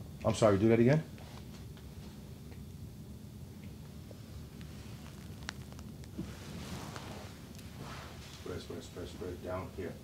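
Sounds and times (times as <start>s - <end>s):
steady low hum: 0.0s - 10.0s
soft rustle: 4.1s - 9.3s.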